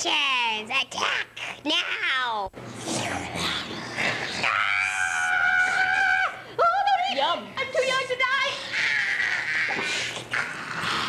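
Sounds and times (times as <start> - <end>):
child screaming: 4.4 - 6.4.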